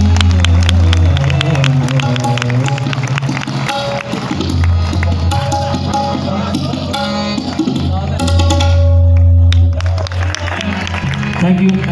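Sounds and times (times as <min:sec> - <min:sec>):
tabla strokes: 0:00.0 - 0:10.0
harmonium notes: 0:00.0 - 0:11.9.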